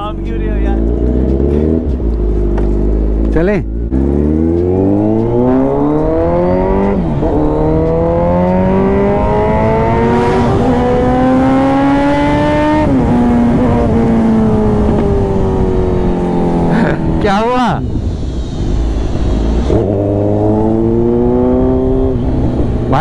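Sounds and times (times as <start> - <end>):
motorcycle engine accelerating: 0.0 - 17.2, 19.1 - 23.0.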